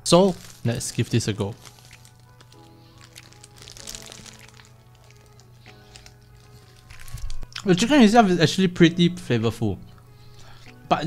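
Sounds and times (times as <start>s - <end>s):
paper wrapper crinkling: 0.0s - 7.6s.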